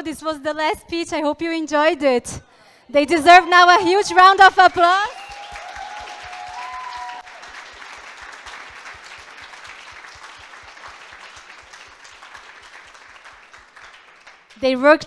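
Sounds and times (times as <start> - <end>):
audience applauding: 4.1 - 14.7.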